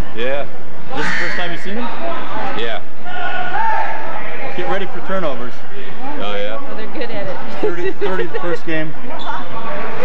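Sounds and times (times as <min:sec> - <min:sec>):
voices shouting over one another: 0:01.0 - 0:04.4
strong shouts: 0:03.0 - 0:04.4.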